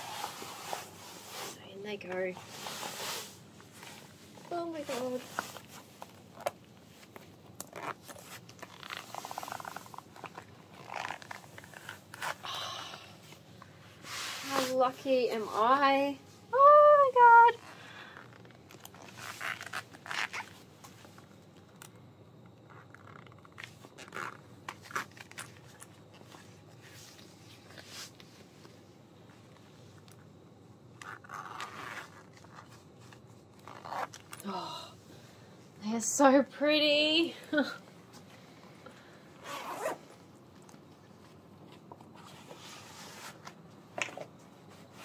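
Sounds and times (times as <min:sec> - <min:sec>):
boot zip being pulled up: 0:07.6 - 0:12.4, 0:18.1 - 0:20.7, 0:22.7 - 0:25.4, 0:31.0 - 0:32.8, 0:33.6 - 0:34.4, 0:39.4 - 0:40.2.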